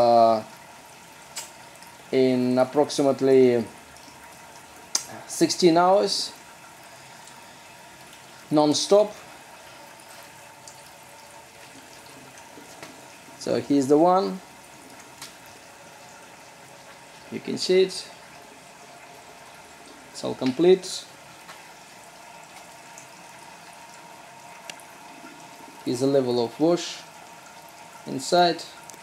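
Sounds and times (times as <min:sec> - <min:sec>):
boiling and flowing liquid: 0:00.0 - 0:29.0.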